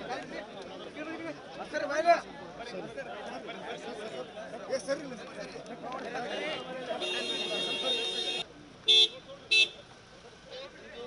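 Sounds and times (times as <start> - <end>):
car horn toots: 7.0 - 9.8.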